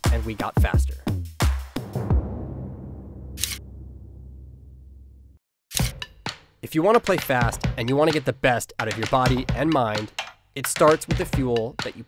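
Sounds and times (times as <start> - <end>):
deep boom: 1.8 - 5.4.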